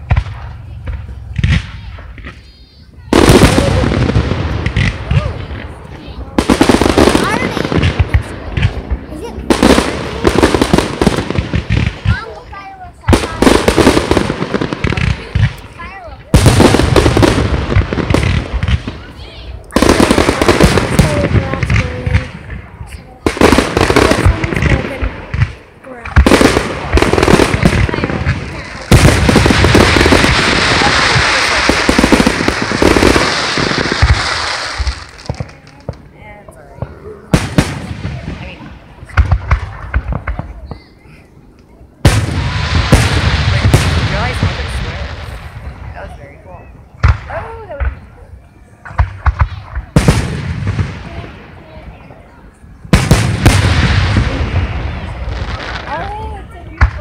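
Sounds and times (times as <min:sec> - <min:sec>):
aerial fireworks bursting: 0:00.0 - 0:57.0
dense fireworks crackle: 0:00.0 - 0:57.0.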